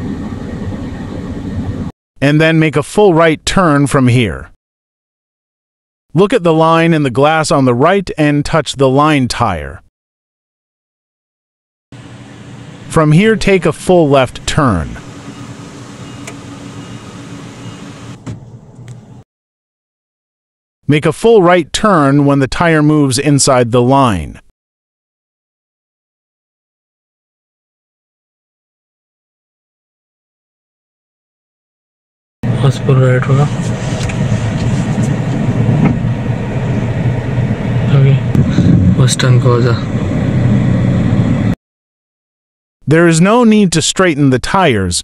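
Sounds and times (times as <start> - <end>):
man's voice: 2.2 - 4.6, 6.2 - 9.8, 12.9 - 15.0, 20.9 - 24.5, 32.5 - 33.5, 42.9 - 45.0
car engine and air conditioning hum: 12.0 - 19.2, 32.5 - 41.6.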